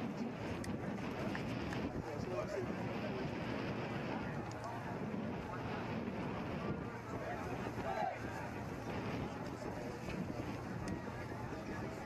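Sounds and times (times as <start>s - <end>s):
wind on microphone: 0.0s - 12.0s
indistinct voices: 3.9s - 12.0s.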